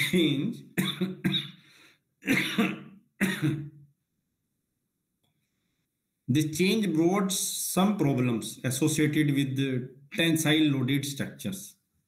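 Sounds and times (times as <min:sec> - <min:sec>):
man coughing: 0:00.0 - 0:01.6, 0:02.2 - 0:03.8.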